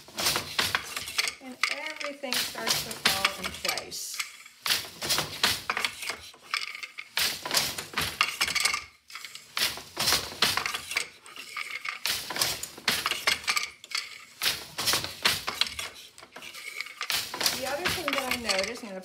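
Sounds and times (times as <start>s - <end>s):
shuttle thrown through loom: 0.0s - 18.9s
loom beater knocking: 0.0s - 19.0s
loom shafts clacking and clinking: 0.0s - 19.0s.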